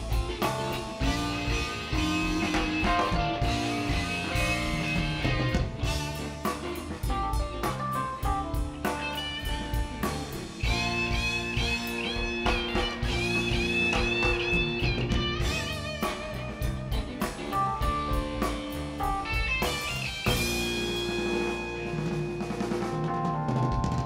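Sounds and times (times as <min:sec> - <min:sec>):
drum kit: 0:00.0 - 0:24.0
electric guitar lead with bent notes: 0:00.0 - 0:24.0.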